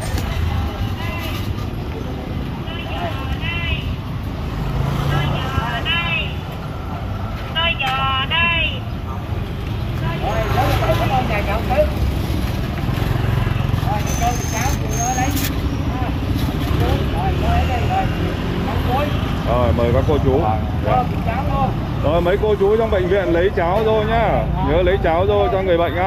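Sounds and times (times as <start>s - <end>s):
motorbike traffic rumble: 0.0s - 26.0s
people talking: 10.0s - 12.0s.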